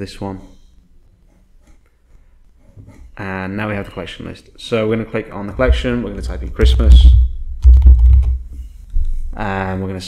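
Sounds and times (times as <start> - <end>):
typing on computer keyboard: 7.6 - 8.4.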